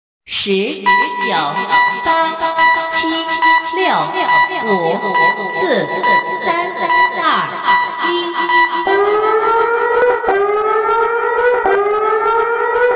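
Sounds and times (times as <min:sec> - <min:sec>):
steady high beep tone: 0:00.8 - 0:10.5
wailing alert siren: 0:00.9 - 0:12.9.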